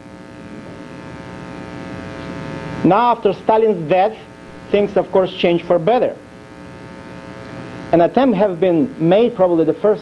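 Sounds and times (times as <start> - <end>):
electrical buzz: 0.0 - 10.0
man speaking: 2.8 - 6.2, 7.9 - 10.0.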